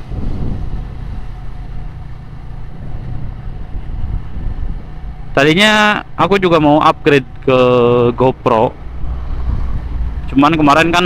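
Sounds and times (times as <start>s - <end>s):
wind buffeting microphone: 0.0s - 6.0s, 7.0s - 11.0s
motorcycle engine rumble: 0.0s - 11.0s.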